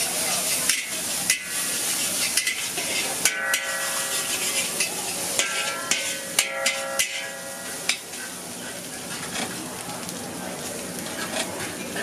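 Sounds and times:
metal spatula scraping a wok: 0.0s - 9.6s
food sizzling: 0.0s - 12.0s
sharp metal clanks: 4.8s - 8.1s.

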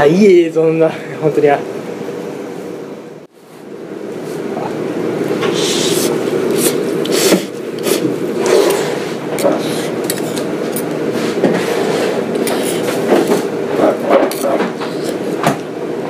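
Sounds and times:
steady rush of background noise: 0.0s - 16.0s
utensils and dishes clicking: 6.5s - 11.0s, 12.3s - 15.2s.

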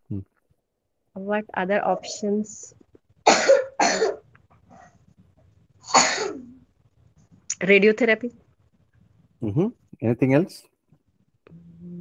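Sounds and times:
person coughing: 3.3s - 4.2s, 5.9s - 6.5s.

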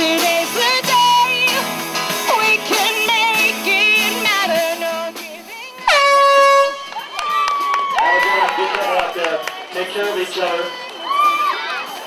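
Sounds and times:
air horn blast: 5.8s - 7.0s.

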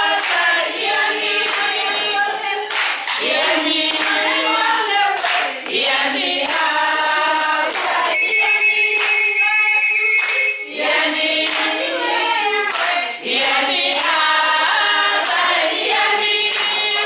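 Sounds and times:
hand clapping: 0.0s - 0.6s, 1.4s - 1.8s, 2.7s - 10.6s, 11.4s - 13.1s, 13.8s - 14.3s, 15.1s - 17.0s
group of people singing: 0.0s - 17.0s.

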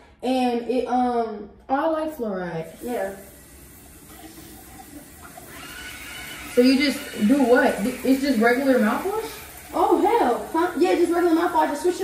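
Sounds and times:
faint running water at sink: 2.6s - 12.0s.

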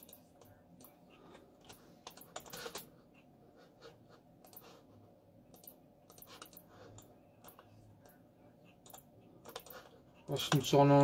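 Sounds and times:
computer keys clicking: 1.6s - 2.9s, 5.5s - 8.2s, 8.8s - 10.8s.

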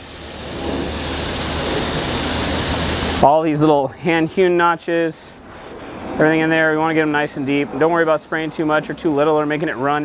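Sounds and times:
spray can hissing: 0.0s - 3.3s, 5.5s - 10.0s.

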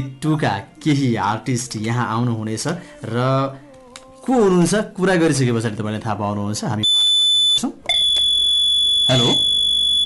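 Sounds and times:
high-pitched telephone beep: 6.8s - 10.0s.

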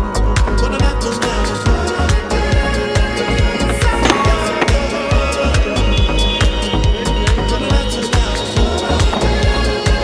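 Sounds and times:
background music with steady beat: 0.0s - 10.0s
skateboard rolling on pavement: 2.2s - 10.0s
skateboard clack: 3.6s - 5.2s.

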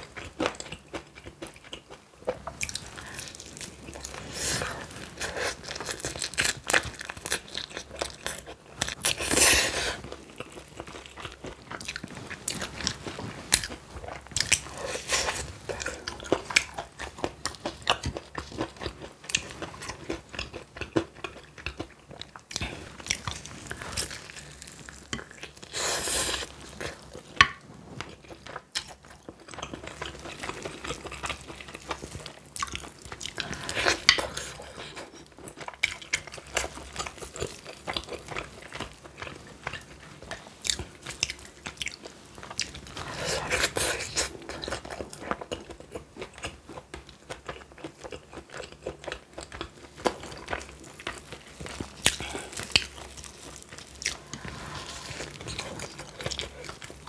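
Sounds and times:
chewing: 0.0s - 57.0s.

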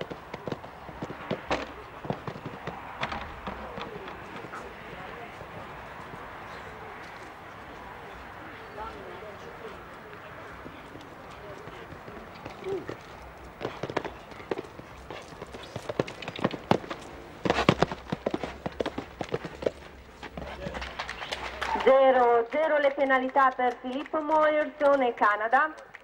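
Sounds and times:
hooves on sand: 0.0s - 26.0s.

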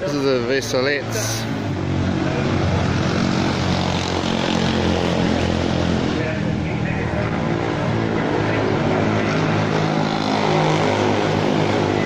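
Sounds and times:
people talking: 0.0s - 1.5s, 6.2s - 9.8s
engine running steadily: 0.0s - 12.0s.

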